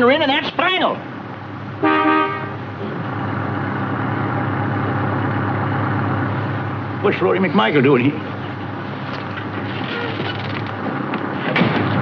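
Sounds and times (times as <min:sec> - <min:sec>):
car engine chugging: 0:00.0 - 0:12.0
car horn toot: 0:01.8 - 0:02.6.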